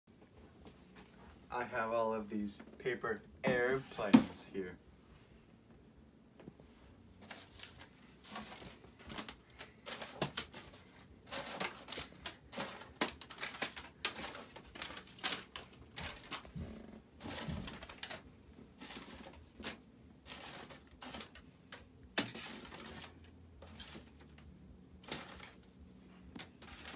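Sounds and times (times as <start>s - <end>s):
paper rustling and crinkling: 7.2s - 26.9s.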